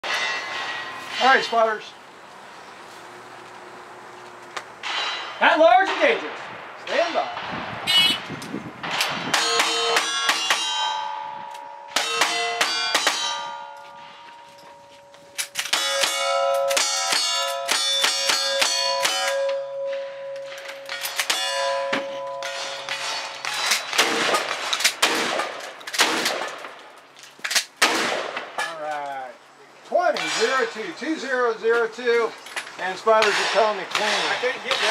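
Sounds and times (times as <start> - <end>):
steel plates ringing: 0.0 - 2.1, 4.8 - 6.3, 9.3 - 24.6
gunshots: 22.4 - 26.8, 27.6 - 28.6, 33.2 - 34.9.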